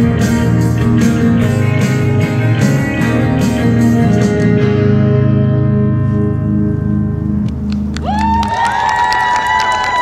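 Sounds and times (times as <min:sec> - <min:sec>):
audience clapping: 0:07.6 - 0:10.0
audience whooping and cheering: 0:07.9 - 0:10.0.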